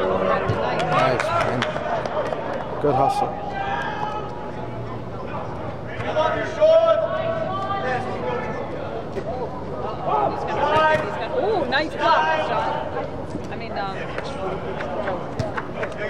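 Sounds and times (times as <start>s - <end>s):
players shouting: 0.0s - 9.1s.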